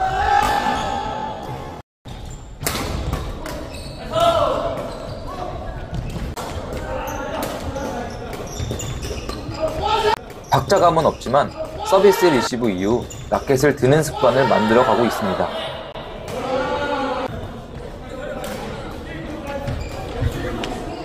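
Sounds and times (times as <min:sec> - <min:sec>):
racket hitting shuttlecock: 0:02.6 - 0:03.7
players calling out: 0:06.7 - 0:17.4.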